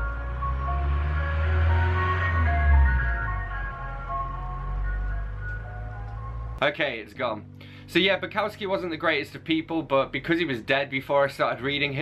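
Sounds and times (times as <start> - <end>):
ice cream van chimes: 0.0 - 6.6.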